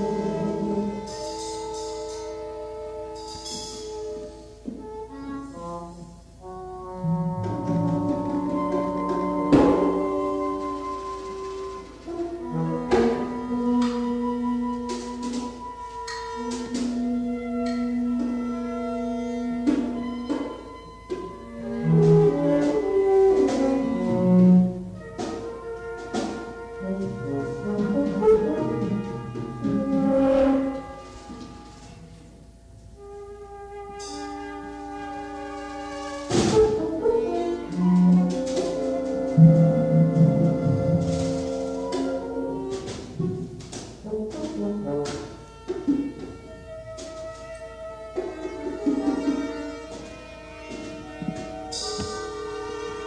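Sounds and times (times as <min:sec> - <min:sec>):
chamber music long held notes: 0:00.0 - 0:53.0.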